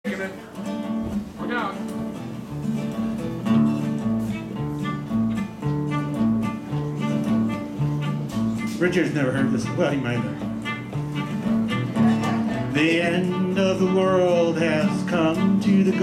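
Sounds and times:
acoustic guitar strumming: 0.1 - 16.0
acoustic bass: 2.0 - 16.0
sliding fiddle phrase: 3.8 - 16.0.

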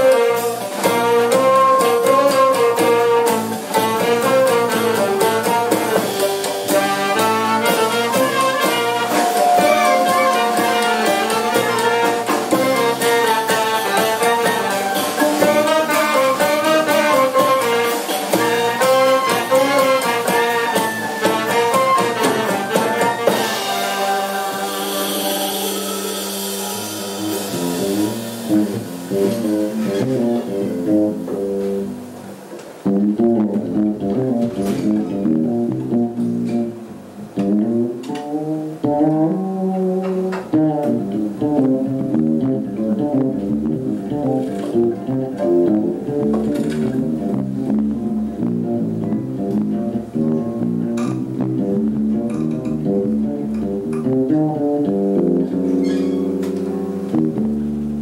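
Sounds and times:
oud solo melody: 0.0 - 31.3, 32.9 - 58.0
double bass line: 0.0 - 58.0
cymbal wash: 23.4 - 29.7.

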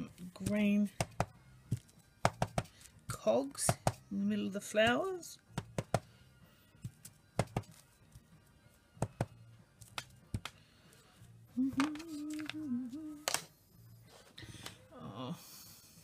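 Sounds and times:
rubber stamps tapping on paper: 0.4 - 2.8, 3.7 - 4.0, 5.6 - 6.1, 6.8 - 7.8, 9.0 - 10.6.

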